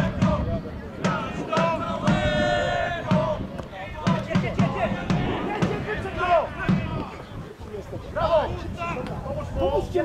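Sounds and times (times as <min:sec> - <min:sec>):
people shouting: 0:01.0 - 0:03.4
sharp thumps: 0:04.3 - 0:07.1.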